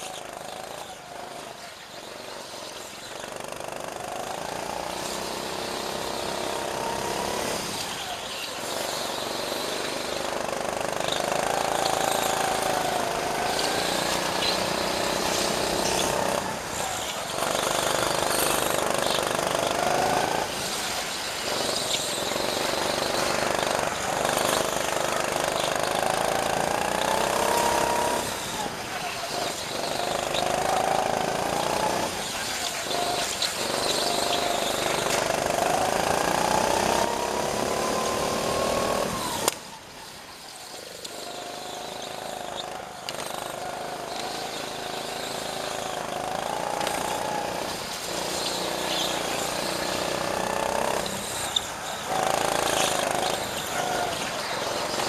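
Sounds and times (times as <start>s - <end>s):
go-kart engine accelerating: 0.0s - 55.0s.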